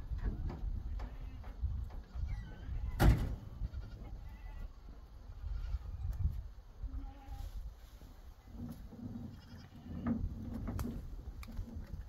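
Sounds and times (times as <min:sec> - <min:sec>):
low rumble of wind: 0:00.0 - 0:12.0.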